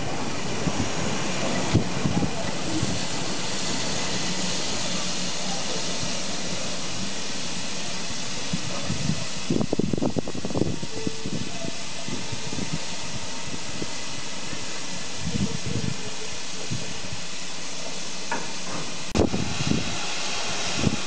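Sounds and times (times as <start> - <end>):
steam hissing from locomotive: 0.0 - 21.0.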